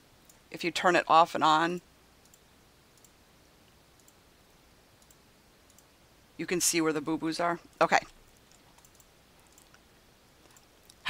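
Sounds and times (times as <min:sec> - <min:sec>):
faint computer mouse clicks: 0:02.2 - 0:02.4, 0:03.0 - 0:04.2, 0:05.0 - 0:05.9, 0:08.3 - 0:09.8, 0:10.4 - 0:11.0.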